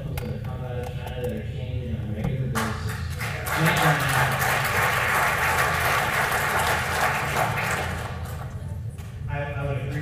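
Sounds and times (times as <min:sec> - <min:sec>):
audience applauding: 0:02.9 - 0:08.6.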